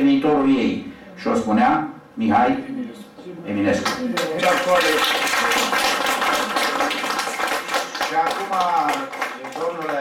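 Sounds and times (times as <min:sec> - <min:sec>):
people applauding: 0:03.8 - 0:10.0.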